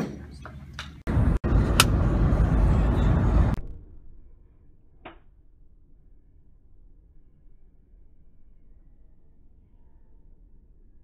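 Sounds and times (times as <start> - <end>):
road and wind noise inside car: 0.6 - 3.8.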